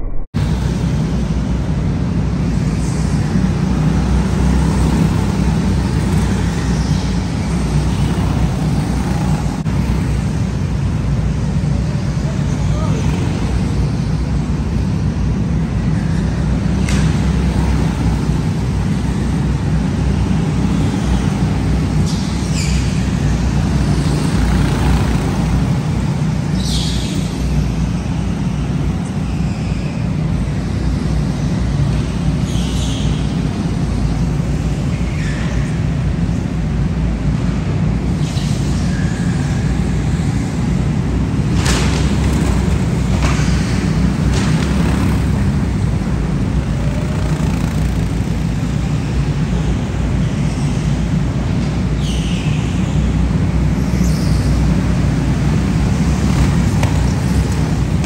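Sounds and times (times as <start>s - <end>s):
go-karts rumbling: 0.0s - 58.0s
karts passing by: 0.0s - 58.0s.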